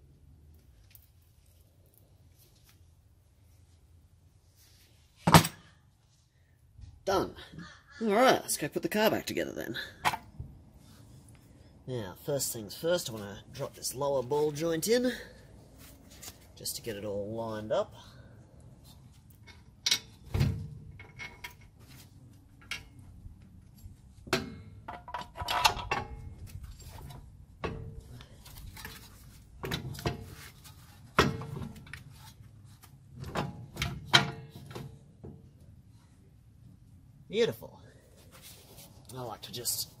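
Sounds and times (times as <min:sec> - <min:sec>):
metal clunks and clinks: 0:24.3 - 0:26.2, 0:33.3 - 0:35.4.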